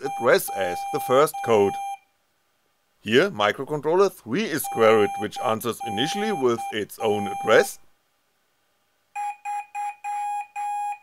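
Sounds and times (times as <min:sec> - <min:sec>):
morse code beeps: 0:00.0 - 0:02.0, 0:04.6 - 0:07.8, 0:09.2 - 0:11.0.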